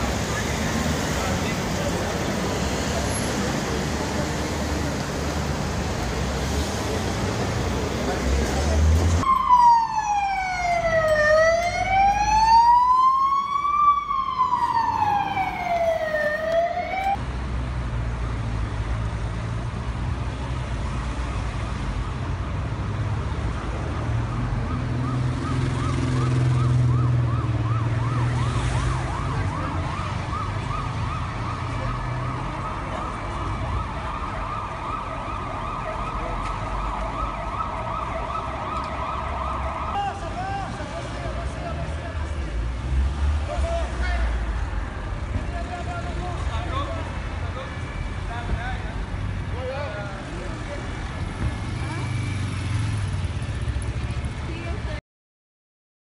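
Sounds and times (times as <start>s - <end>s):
street traffic rumble: 0.0s - 55.0s
emergency siren wailing: 9.2s - 17.2s, 24.2s - 40.8s
faint fast-warbling siren: 9.2s - 17.2s, 24.3s - 40.0s.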